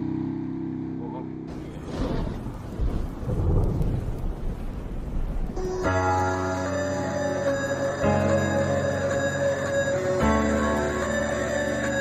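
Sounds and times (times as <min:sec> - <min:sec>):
motorcycle running: 0:00.0 - 0:12.0
wind buffeting microphone: 0:01.6 - 0:05.6.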